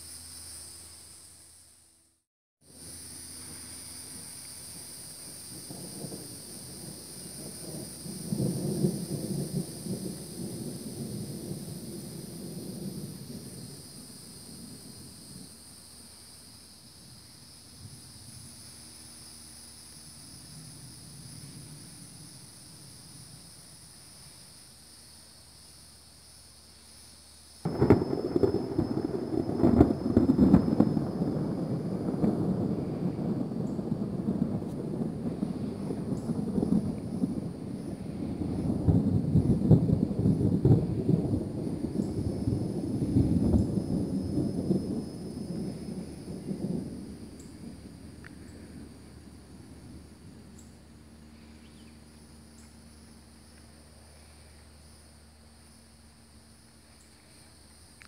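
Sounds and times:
thunderclap with long rumble: 4.6 - 24.1, 27.6 - 57.0.

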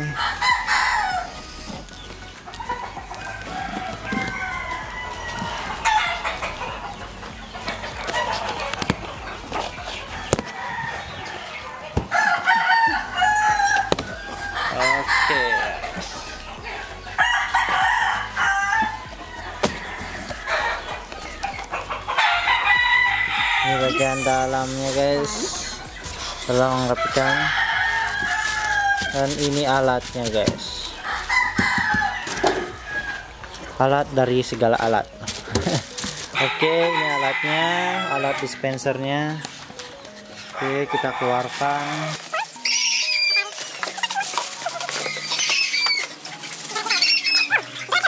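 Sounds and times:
chickens clucking: 0.0 - 48.0
roosters crowing: 0.0 - 48.0.

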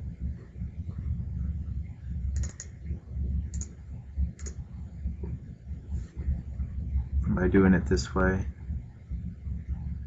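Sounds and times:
low background rumble: 0.0 - 10.0
computer mouse clicking: 2.3 - 2.8, 3.5 - 3.8, 4.4 - 4.6.

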